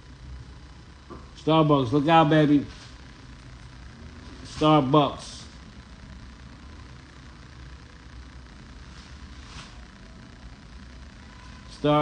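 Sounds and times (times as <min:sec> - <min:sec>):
low mechanical hum: 0:00.0 - 0:12.0
faint hiss: 0:01.0 - 0:12.0.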